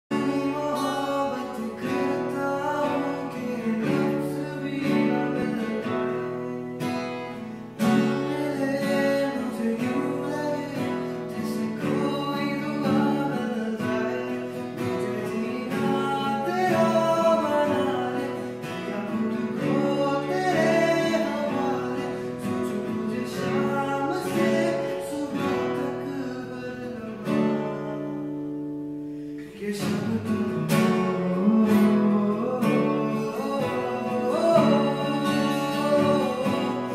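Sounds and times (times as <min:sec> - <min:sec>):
man singing slow love song: 0:00.1 - 0:36.9
strummed acoustic guitar: 0:00.1 - 0:36.9.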